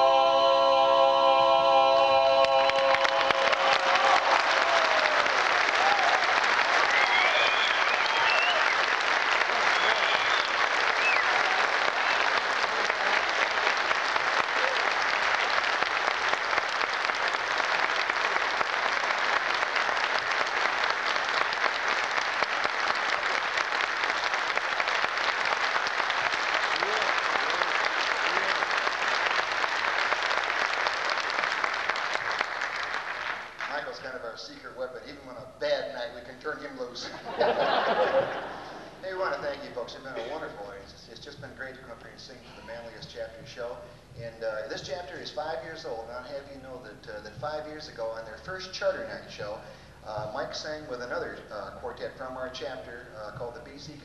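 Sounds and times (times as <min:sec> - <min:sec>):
a cappella chord: 0:00.0 - 0:03.7
audience applauding: 0:02.3 - 0:34.0.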